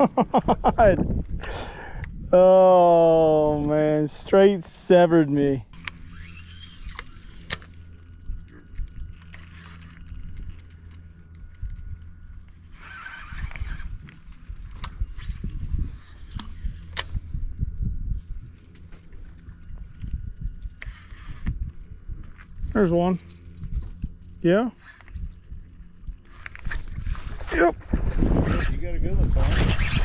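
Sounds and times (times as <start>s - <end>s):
low engine hum: 1.0s - 30.0s.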